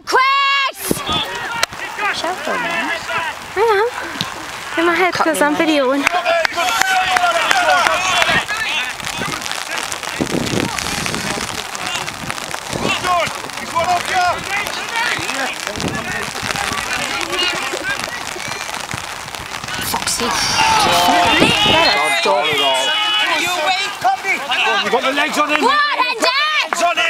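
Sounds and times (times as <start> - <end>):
outdoor noise hiss: 0.1 - 27.0
men shouting: 1.0 - 10.9, 11.5 - 18.8, 19.8 - 27.0.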